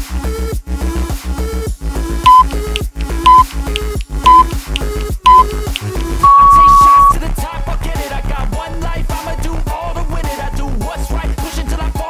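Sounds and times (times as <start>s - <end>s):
countdown timer beeps: 2.3s - 7.2s.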